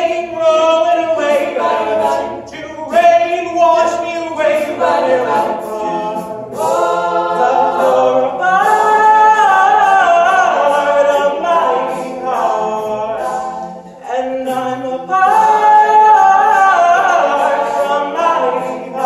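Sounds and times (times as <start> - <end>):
male a cappella group singing: 0.0 - 19.0.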